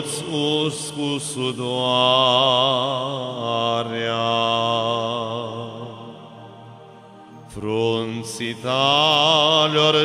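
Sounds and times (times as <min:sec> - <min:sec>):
man singing a hymn: 0:00.0 - 0:06.4, 0:07.3 - 0:10.0.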